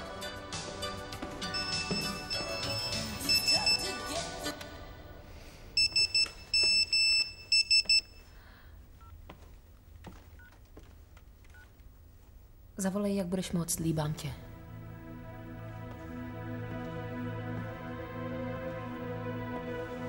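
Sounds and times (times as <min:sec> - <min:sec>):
phone text message alert beeps: 0:01.6 - 0:03.9, 0:05.8 - 0:08.2.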